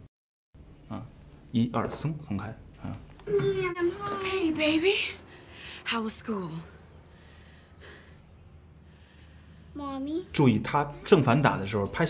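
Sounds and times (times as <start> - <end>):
woman speaking: 3.3 - 5.2, 5.8 - 6.8.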